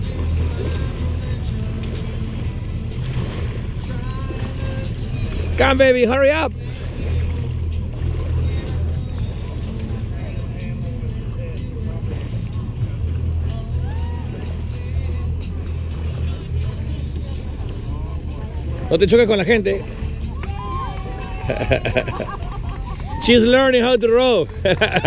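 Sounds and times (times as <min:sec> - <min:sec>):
background music: 0:00.0 - 0:25.0
steady low rumble: 0:00.0 - 0:25.0.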